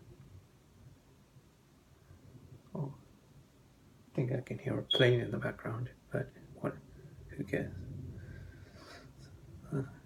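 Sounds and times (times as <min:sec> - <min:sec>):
man murmuring: 0:09.6 - 0:10.0.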